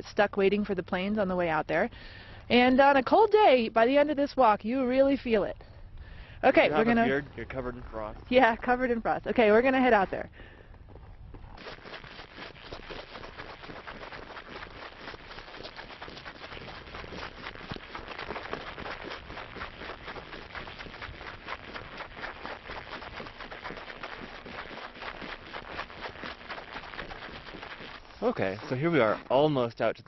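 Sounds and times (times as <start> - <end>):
boots crunching on snow: 11.3 - 29.6.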